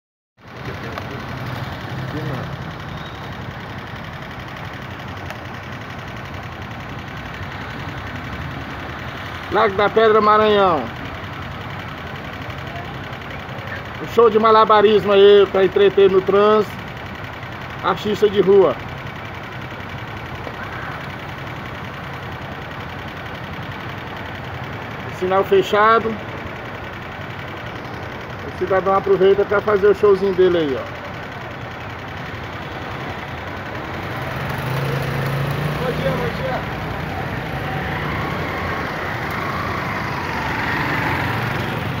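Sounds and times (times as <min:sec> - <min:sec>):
road noise: 0:00.4 - 0:42.0
street traffic: 0:00.4 - 0:42.0
vehicle engine idling: 0:00.4 - 0:42.0.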